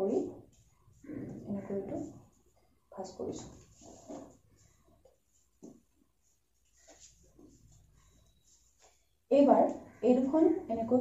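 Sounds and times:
soft paper rustle: 2.0s - 9.2s.

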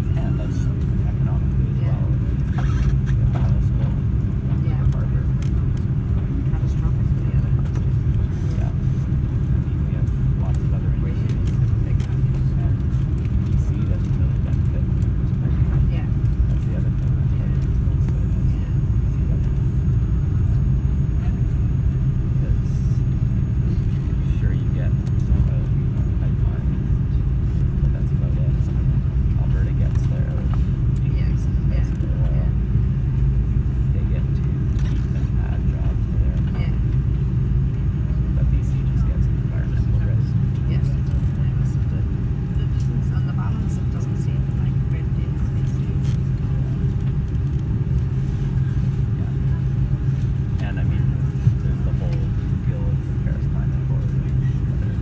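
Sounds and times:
airplane cabin rumble while taxiing: 0.0s - 55.0s.

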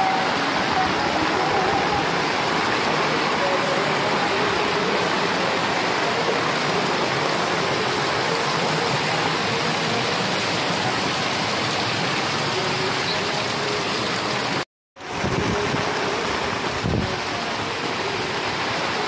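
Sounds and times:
floodwater rushing: 0.0s - 19.0s.

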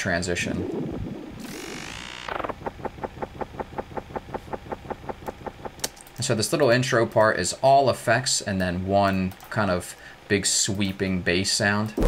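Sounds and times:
synth falling sweep: 0.0s - 5.9s
fast synth pulsing: 0.0s - 6.0s.

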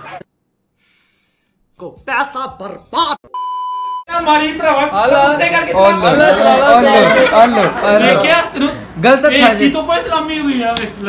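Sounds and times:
electronic censor bleep: 3.3s - 4.1s.

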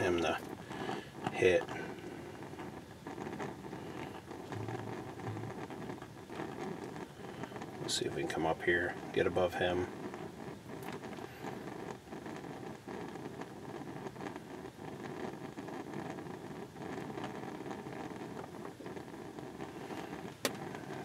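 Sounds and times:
steady noisy hiss: 0.0s - 21.0s.

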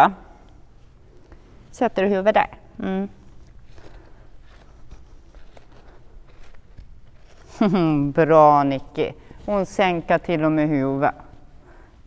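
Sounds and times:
woman speaking: 1.7s - 3.3s, 7.6s - 11.3s
rope rustling: 3.2s - 12.0s.

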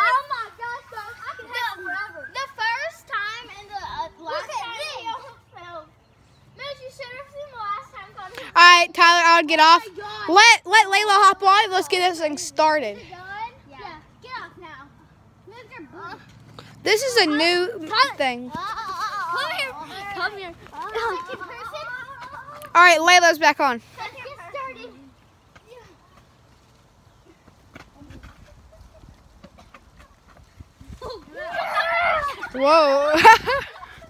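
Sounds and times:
children talking and calling: 0.0s - 34.0s
wind rumble on microphone: 30.3s - 31.4s.

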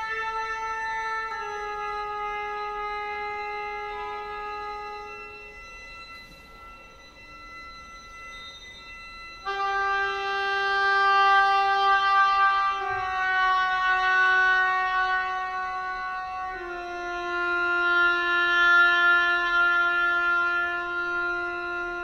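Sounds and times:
oboe sustained notes: 0.0s - 22.0s
violin sustained notes: 0.0s - 22.0s.

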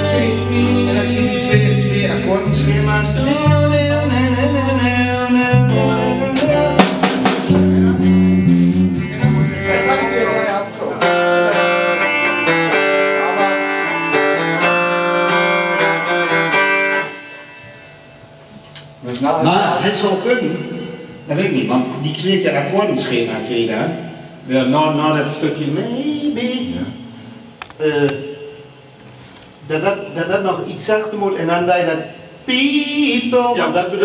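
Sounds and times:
low bass line: 0.0s - 11.5s
guitars playing: 0.0s - 24.4s.

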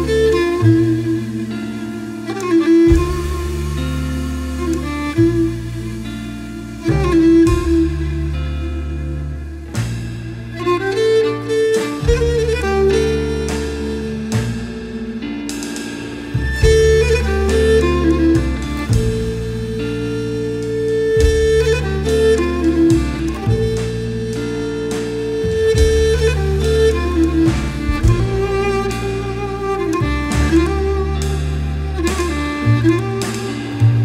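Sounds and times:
bowed lyra melody: 0.0s - 34.0s
double bass: 0.0s - 34.0s
drums: 0.0s - 34.0s.

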